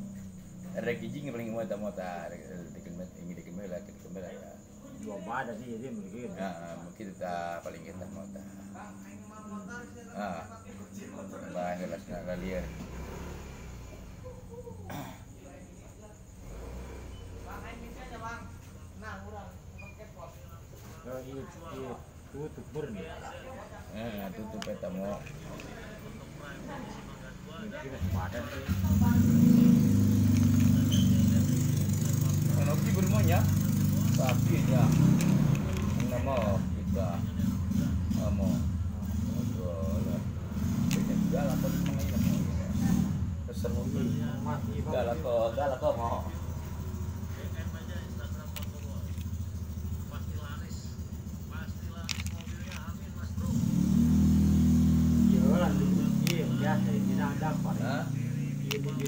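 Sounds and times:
engine humming: 23.9s - 59.0s.

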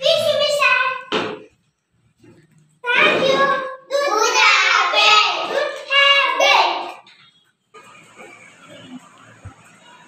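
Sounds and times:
soft indistinct background noise: 0.0s - 10.0s.

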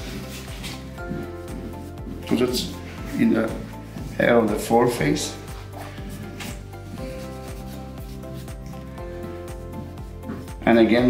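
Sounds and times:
soft background music: 0.0s - 11.0s
chalk block scratching on hair: 6.4s - 9.0s.

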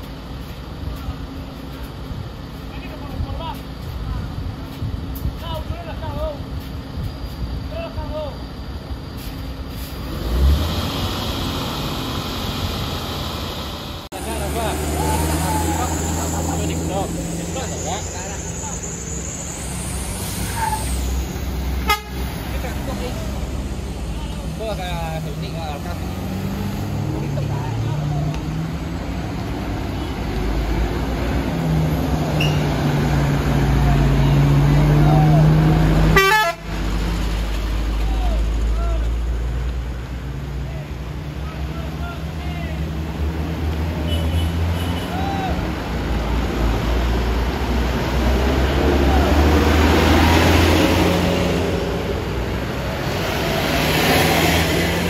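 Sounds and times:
truck diesel engine under load: 0.0s - 55.0s.

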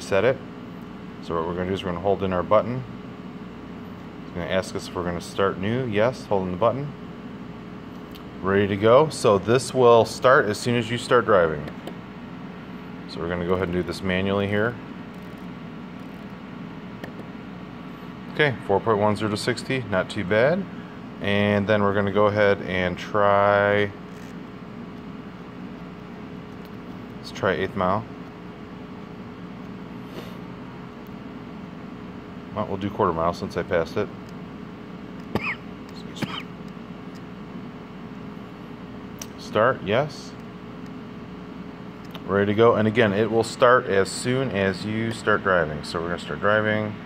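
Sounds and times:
low hum with hiss: 0.0s - 47.0s.

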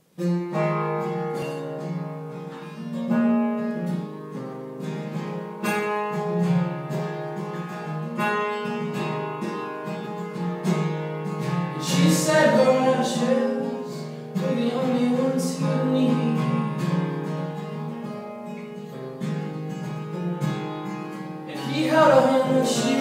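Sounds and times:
acoustic guitar strummed chords: 0.0s - 23.0s.

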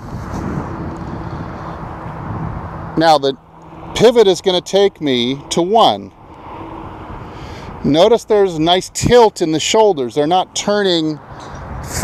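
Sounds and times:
distant traffic rumble: 0.0s - 12.0s.

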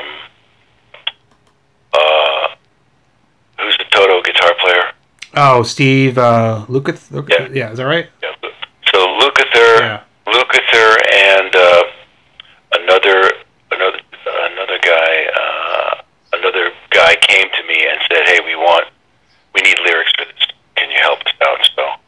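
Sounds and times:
voice over telephone line: 2.0s - 2.6s, 3.6s - 19.0s, 19.6s - 22.0s.

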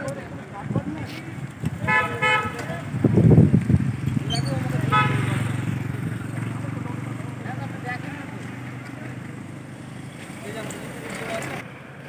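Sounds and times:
vehicle horn beeps: 4.9s - 5.5s.

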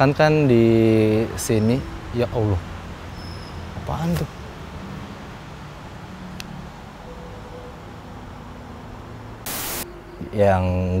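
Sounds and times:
faint steady hiss: 0.0s - 11.0s
static burst: 9.4s - 9.8s.

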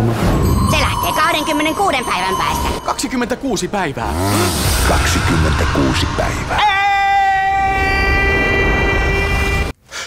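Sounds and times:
low rumble: 0.5s - 7.6s.

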